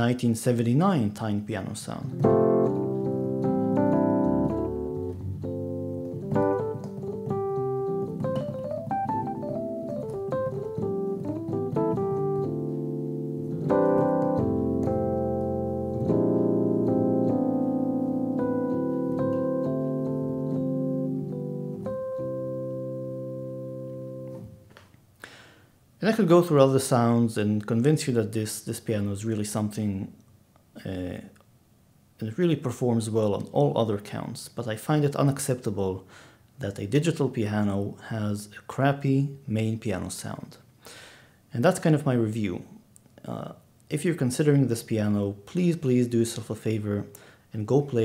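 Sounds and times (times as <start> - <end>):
electric piano chords and melody: 2.1 - 24.6.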